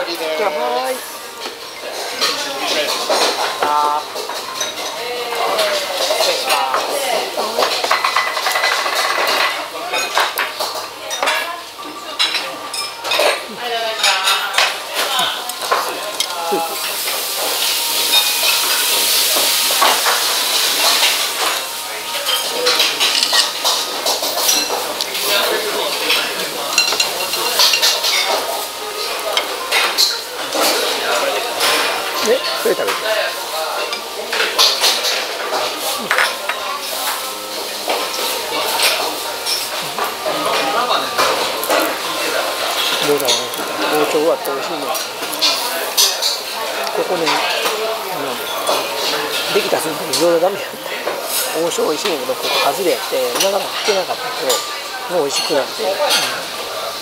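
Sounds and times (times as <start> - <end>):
plates and cutlery clinking: 0.0 - 57.0.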